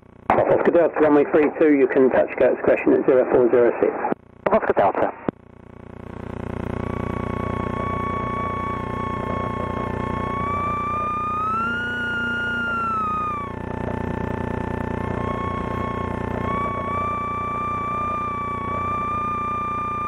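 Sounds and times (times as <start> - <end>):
high steady whine: 0.0 - 20.0
piston engine drone: 5.6 - 20.0.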